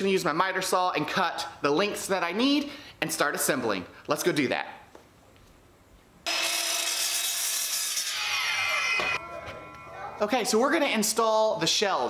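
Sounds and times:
miter saw cutting wood: 6.3 - 9.4.

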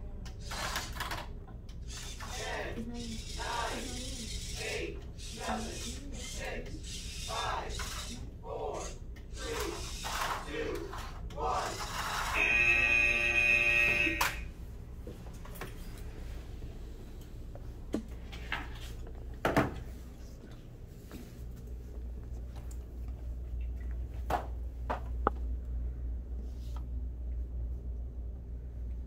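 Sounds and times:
electronic buzzer: 12.0 - 14.5.

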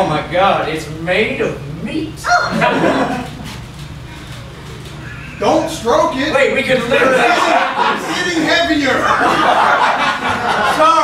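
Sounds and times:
audience laughing: 2.3 - 3.7, 6.7 - 11.0.

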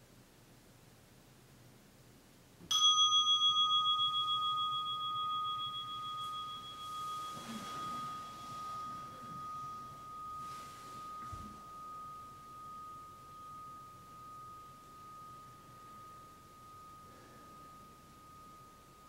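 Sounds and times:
meditation bell ringing: 2.7 - 19.0.

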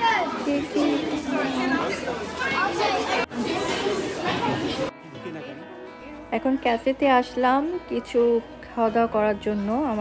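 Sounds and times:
background music: 0.0 - 10.0
voices chattering: 0.0 - 10.0.

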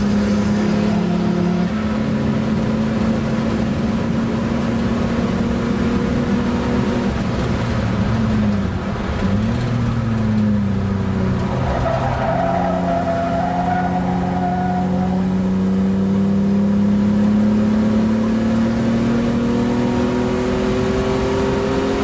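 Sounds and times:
car engine from inside cabin: 0.0 - 11.5, 13.8 - 22.0.

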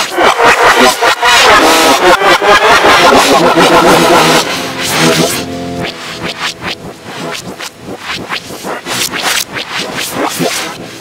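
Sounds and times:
harsh noise: 0.1 - 11.0
distorted reversed voice: 2.8 - 9.1.

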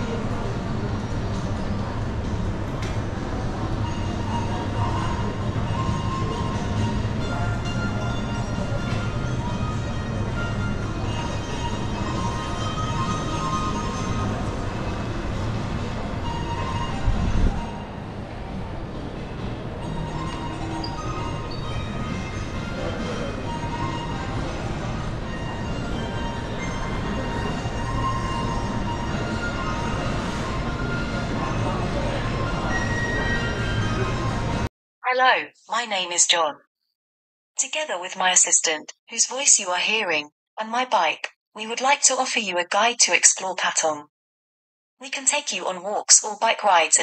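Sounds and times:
faint music: 0.0 - 34.7
shopping centre ambience rumble: 0.0 - 36.4.

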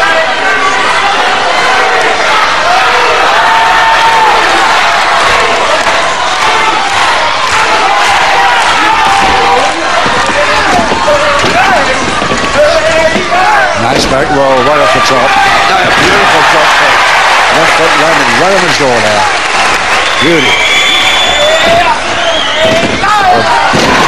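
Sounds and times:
crowd shouting: 0.0 - 24.0.

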